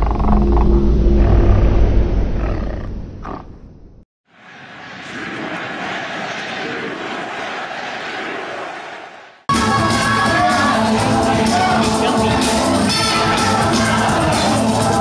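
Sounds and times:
heavy low rumble: 0.0s - 4.0s.

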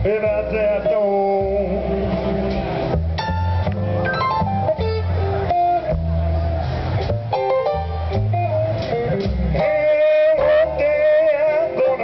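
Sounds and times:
blues band playing: 0.0s - 12.0s.

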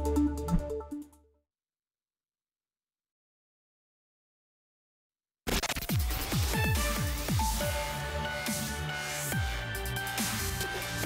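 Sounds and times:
electronic intro music: 0.0s - 1.2s.

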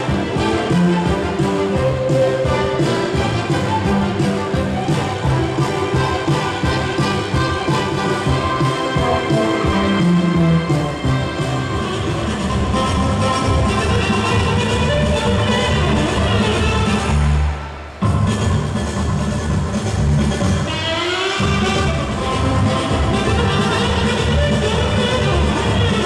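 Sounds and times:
instrumental music: 0.0s - 26.0s.

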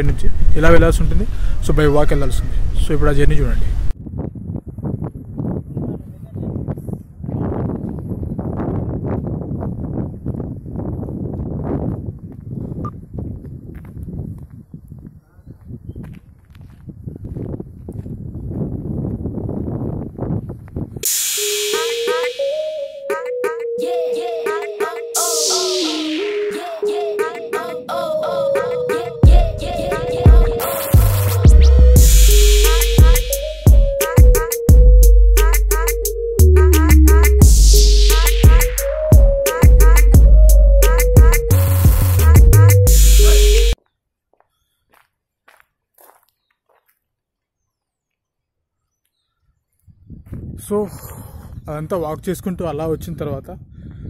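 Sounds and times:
footsteps on road: 4.2s - 21.0s, 43.8s - 48.3s
loud hiss: 21.0s - 22.4s, 25.2s - 26.6s, 32.0s - 33.5s
electronic music with rising sweeps: 21.0s - 43.8s.

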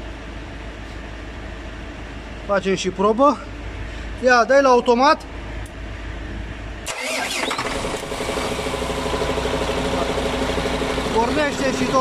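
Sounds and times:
diesel engine idling: 6.6s - 12.0s
starter motor cranking: 6.9s - 12.0s.

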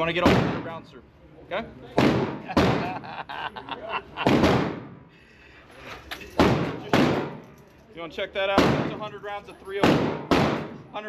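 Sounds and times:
echoing gunshots indoors: 2.0s - 2.9s, 4.2s - 5.0s, 6.4s - 7.6s, 8.6s - 9.1s, 9.8s - 10.9s.

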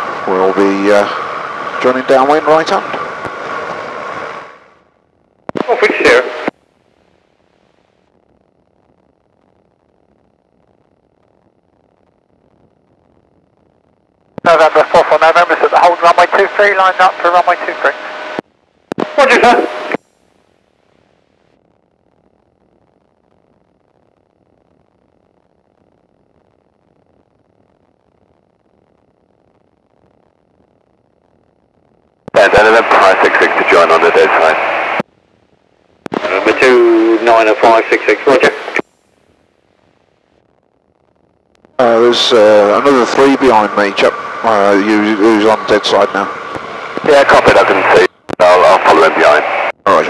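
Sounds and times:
radio voice call: 0.2s - 3.4s, 5.5s - 6.5s, 14.4s - 20.0s, 32.3s - 35.0s, 36.1s - 38.8s, 41.8s - 50.0s
faint low hiss: 4.7s - 50.0s
microlight engine: 41.8s - 48.0s.

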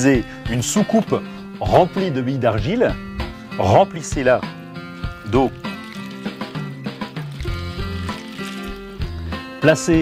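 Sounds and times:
background music with held notes: 0.0s - 10.0s
water poured onto clay pebbles: 4.0s - 9.7s.

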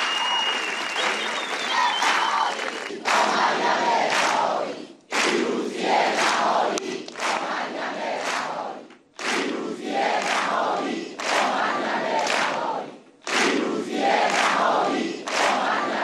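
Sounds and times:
crowd chanting in unison: 1.6s - 16.0s.

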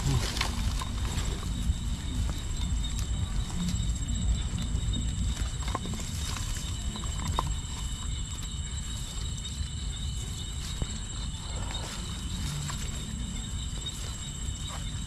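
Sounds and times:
high-pitched insect trill: 0.0s - 15.0s.

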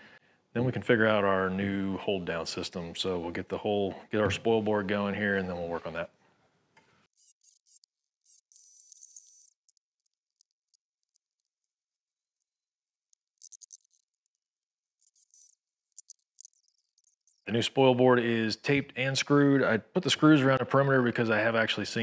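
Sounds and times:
faint thin clicks and rustles: 13.1s - 17.5s.

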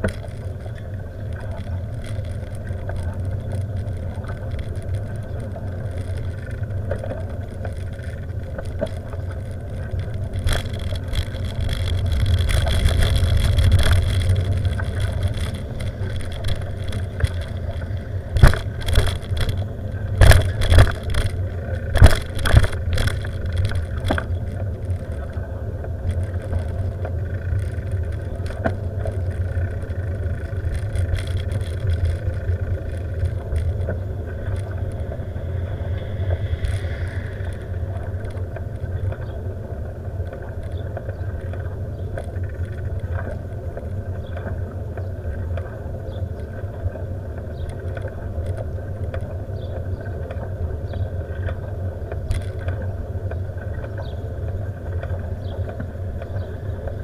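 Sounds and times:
wheels thumping over rails: 0.0s - 35.4s
vehicle rumbling along road: 0.0s - 57.0s.

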